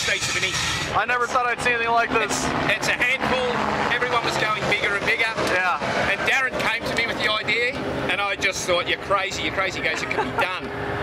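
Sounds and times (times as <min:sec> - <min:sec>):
men talking: 0:00.0 - 0:10.8
men laughing: 0:09.5 - 0:10.8.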